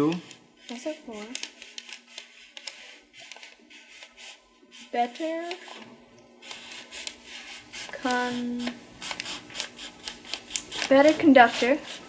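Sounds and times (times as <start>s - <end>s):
paper rustling on iron: 0.0s - 12.0s.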